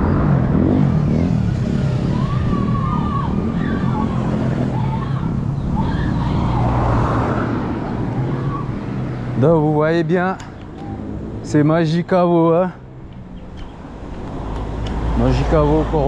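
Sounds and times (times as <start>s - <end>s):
vehicle engine running: 0.0s - 11.8s.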